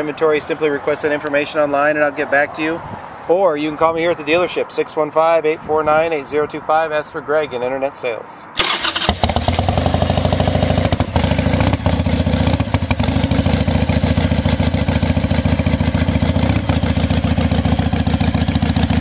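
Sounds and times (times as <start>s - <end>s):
motorcycle engine running: 9.1s - 19.0s.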